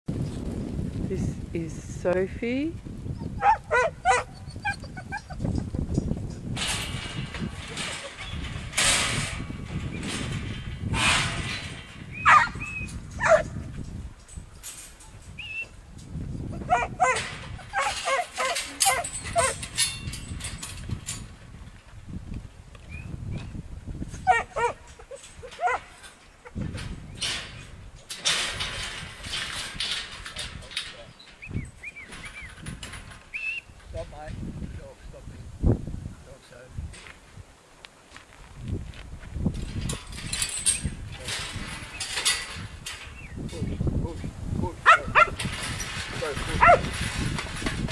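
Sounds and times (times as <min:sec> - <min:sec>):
noisy rustles: 0:00.1 - 0:47.9.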